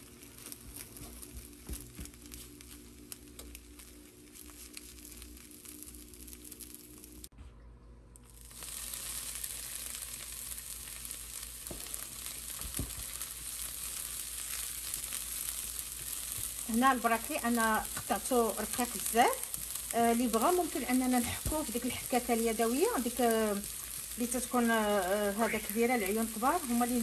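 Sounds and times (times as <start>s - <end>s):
vegetables sizzling in frying pan: 0.0s - 7.3s, 8.4s - 27.0s.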